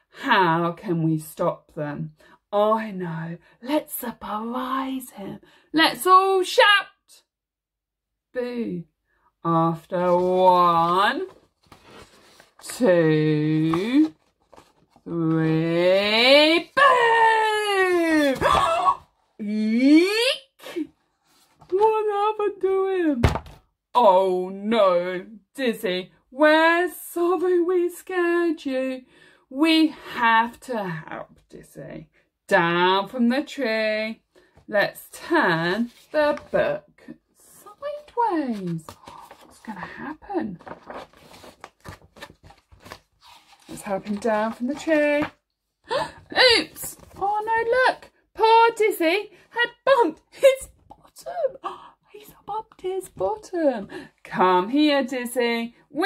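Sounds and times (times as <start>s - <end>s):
woman counting: 0.2s - 7.2s, 8.3s - 11.4s, 12.6s - 14.1s, 15.1s - 20.6s, 21.7s - 23.2s, 29.6s - 40.7s, 43.7s - 45.4s, 46.0s - 56.0s
book pages rustling: 9.9s - 15.6s, 21.0s - 21.8s, 35.7s - 36.6s, 37.7s - 45.4s, 46.6s - 47.7s
woman gasping: 45.9s - 46.7s.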